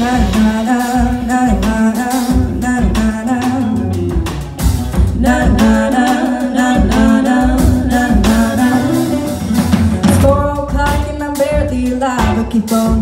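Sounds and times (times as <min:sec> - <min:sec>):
woman singing: 0:00.0 - 0:04.2, 0:05.0 - 0:13.0
double bass: 0:00.0 - 0:13.0
drum kit: 0:00.0 - 0:13.0.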